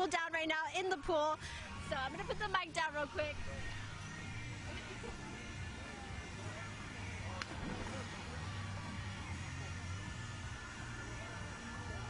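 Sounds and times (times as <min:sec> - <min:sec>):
low hum of pool ambience: 0:00.0 - 0:12.0.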